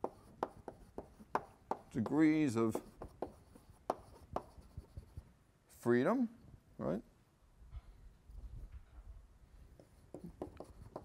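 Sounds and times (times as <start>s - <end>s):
chalk writing on blackboard: 0.0s - 5.2s, 9.6s - 11.0s.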